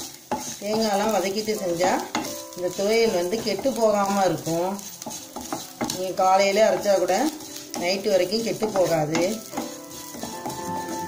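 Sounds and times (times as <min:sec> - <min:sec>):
spatula scraping a pan: 0:00.0 - 0:11.0
vegetables sizzling in a pan: 0:00.0 - 0:11.0.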